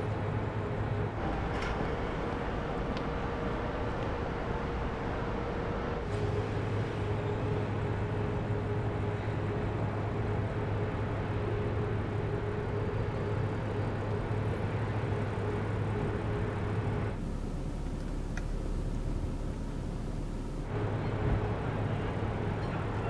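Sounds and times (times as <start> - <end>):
car engine drone: 0.0 - 23.0.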